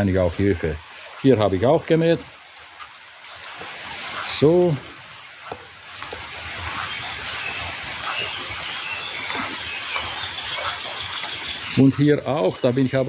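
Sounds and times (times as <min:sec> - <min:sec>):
faint bird chirps: 0:06.8 - 0:12.6.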